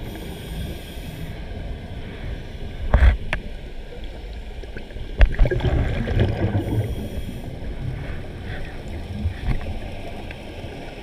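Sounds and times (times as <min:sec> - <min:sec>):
underwater water rumble: 0:00.0 - 0:11.0.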